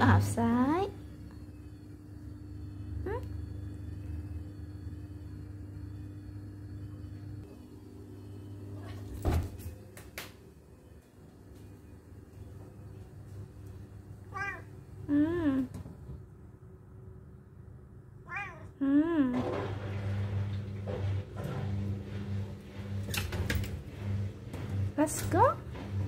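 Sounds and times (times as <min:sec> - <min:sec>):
low background hum: 0:00.0 - 0:26.0
cat meowing: 0:14.3 - 0:14.7, 0:18.2 - 0:18.8.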